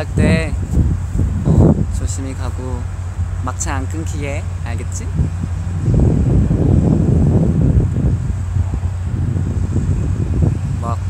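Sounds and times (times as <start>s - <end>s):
steady low hum: 0.0s - 11.0s
wind buffeting microphone: 0.0s - 11.0s.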